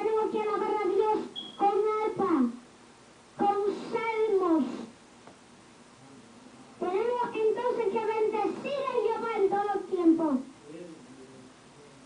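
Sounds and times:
boy's voice drawn-out syllable: 3.4 - 4.9, 6.8 - 10.5.

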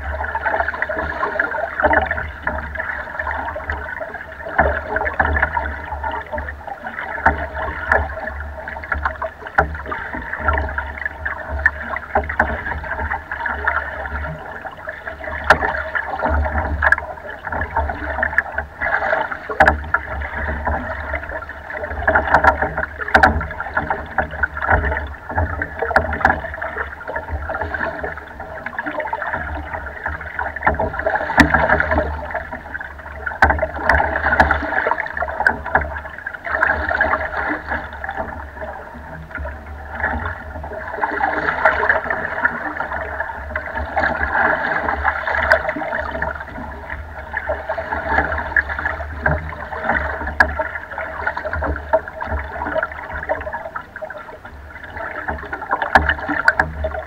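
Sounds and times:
water splashing against boat hull: 0.0 - 57.0
small knocks: 15.4 - 36.0, 55.2 - 57.0.

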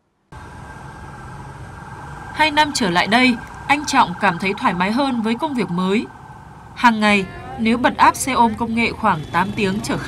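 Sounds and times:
motor traffic noise: 0.3 - 10.0.

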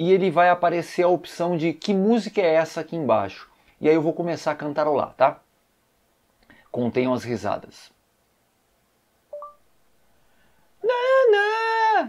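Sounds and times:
two-note rising beep: 9.3 - 9.8.

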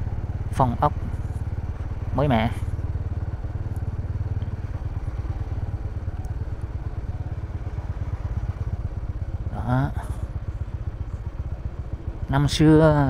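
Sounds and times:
motorbike engine rumbling: 0.0 - 13.0
road noise: 0.0 - 13.0.

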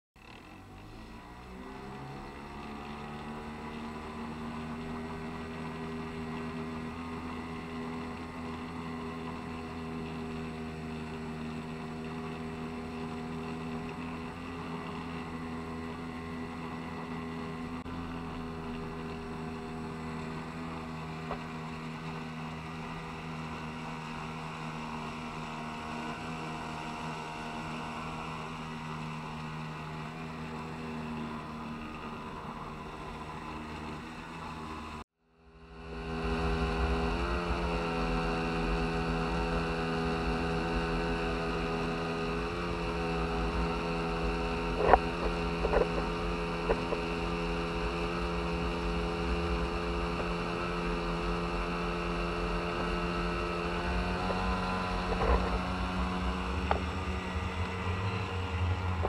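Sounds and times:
outboard motor running: 0.2 - 59.0.

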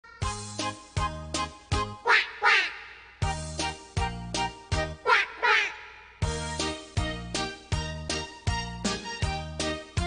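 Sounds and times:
children's song keyboard and bass: 0.0 - 10.0
duck quacking: 2.0 - 3.2, 5.0 - 6.2.

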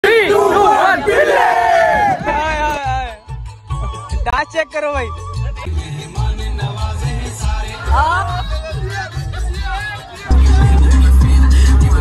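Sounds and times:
men shouting and cheering: 0.0 - 4.2, 7.0 - 12.0.

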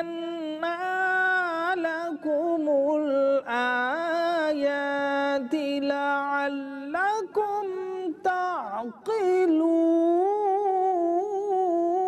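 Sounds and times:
person chanting a sustained vowel: 0.0 - 12.0.

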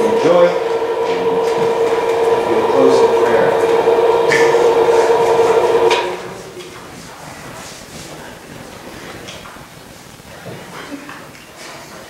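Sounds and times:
electric motor humming: 0.0 - 6.5.

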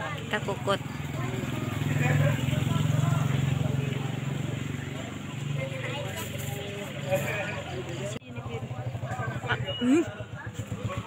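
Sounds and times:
people chatting: 0.0 - 11.0.

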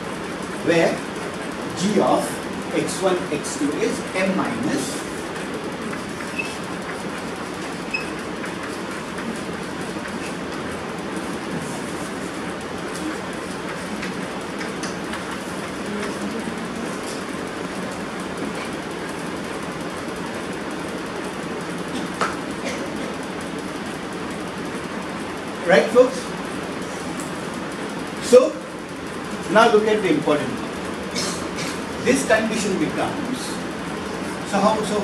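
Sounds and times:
room background noise: 0.0 - 35.0.

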